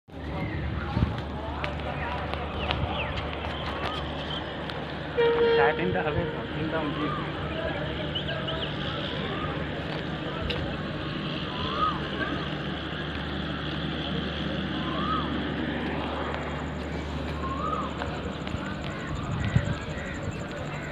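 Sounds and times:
electric locomotive hum and rumble: 0.1 - 20.9.

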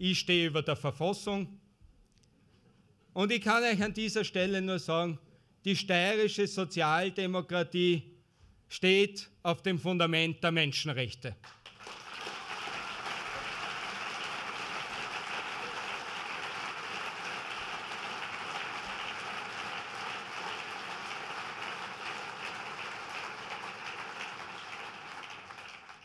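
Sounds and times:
audience applauding: 11.4 - 26.0.

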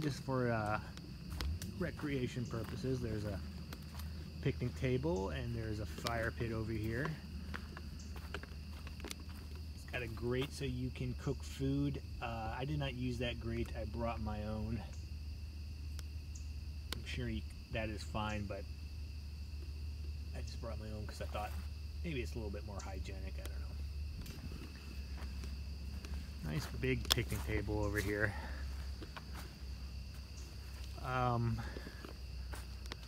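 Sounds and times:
crickets trilling: 0.0 - 33.0.

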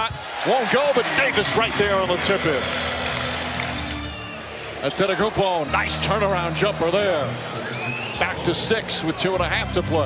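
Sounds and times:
arena crowd hubbub: 0.0 - 10.0
music over public address: 1.2 - 10.0
commentator speaking: 4.8 - 7.3.

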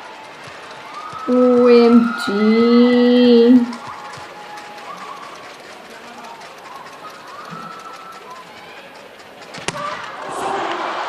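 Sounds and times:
arena crowd hubbub: 0.0 - 11.0
crowd cheering: 0.0 - 11.0.

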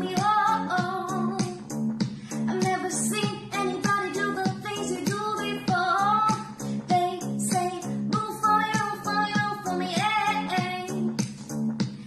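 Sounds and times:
pop backing track with beat: 0.0 - 12.0.

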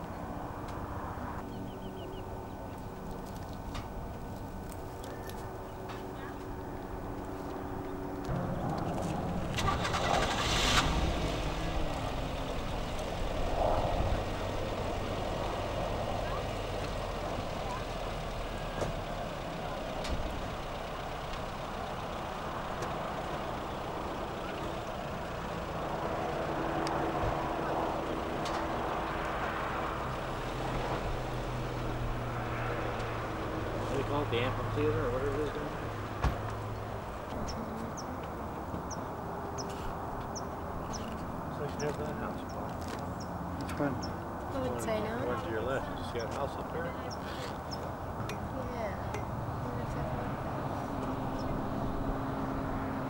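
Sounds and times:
low engine hum: 0.0 - 53.0
traffic engines running: 0.0 - 53.0.

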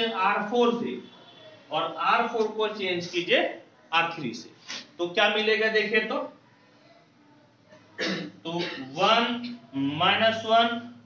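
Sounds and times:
man speaking: 0.0 - 1.1, 1.7 - 6.4, 8.4 - 11.0
man clearing throat: 8.0 - 9.0.

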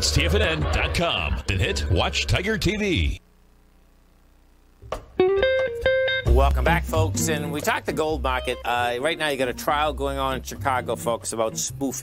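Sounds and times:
voice-over speaking: 0.0 - 3.2
faint low hum: 1.1 - 5.0
guitar theme music: 4.8 - 12.0.

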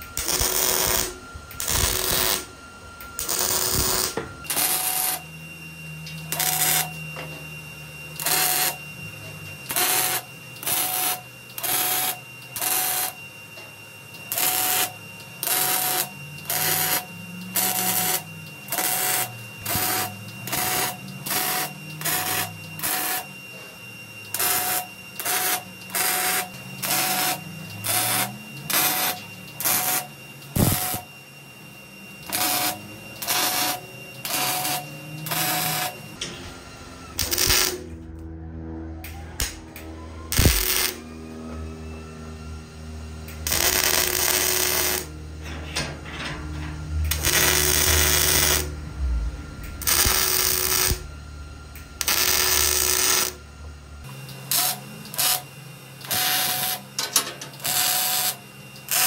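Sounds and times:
welding arc crackling: 0.0 - 2.5, 3.2 - 5.3, 6.3 - 7.0, 8.2 - 8.8, 9.7 - 13.2, 14.3 - 23.3, 24.3 - 31.1, 32.2 - 35.9, 37.2 - 38.2, 39.4 - 39.6, 40.3 - 41.0, 43.3 - 45.1, 47.0 - 51.1, 52.0 - 53.4, 56.0 - 56.8, 57.6 - 59.0.

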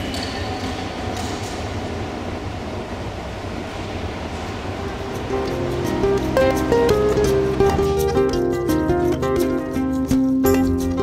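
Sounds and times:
escalators rumbling and hissing: 0.0 - 11.0
plucked-string music: 4.8 - 11.0.

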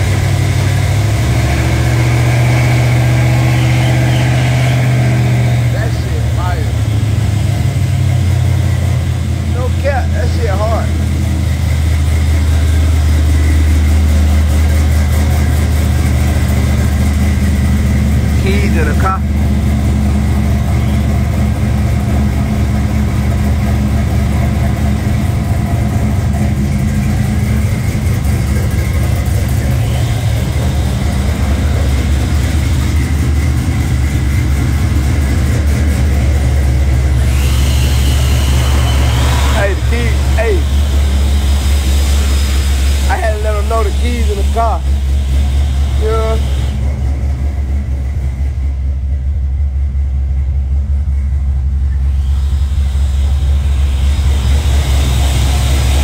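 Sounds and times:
car engine idling: 0.0 - 56.0.

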